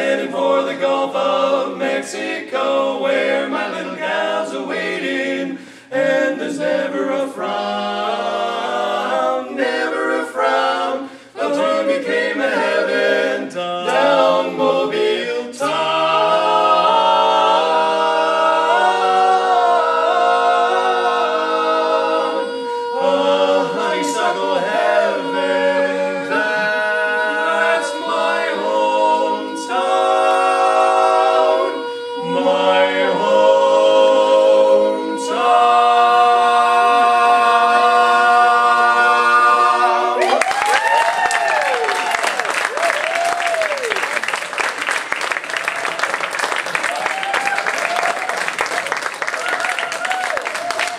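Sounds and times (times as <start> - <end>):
male quartet singing in harmony: 0.0 - 40.3
audience applause: 40.2 - 50.9.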